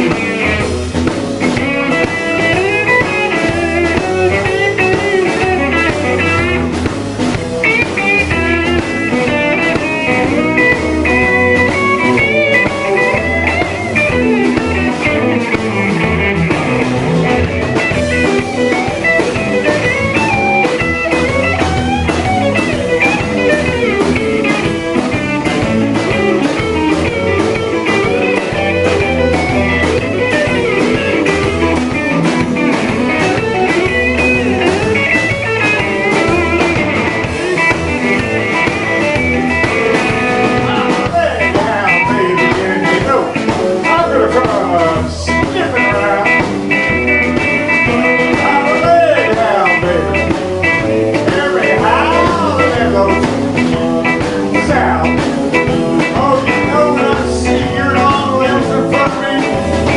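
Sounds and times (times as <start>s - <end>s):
blues-rock band playing: 0.0s - 59.9s
electric guitar lead bending notes: 0.0s - 59.9s.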